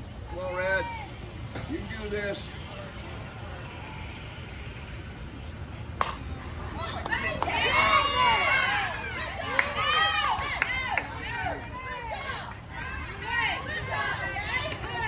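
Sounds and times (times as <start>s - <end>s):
bat cracking on ball: 6.0s - 6.3s
spectators yelling and cheering: 6.4s - 15.0s.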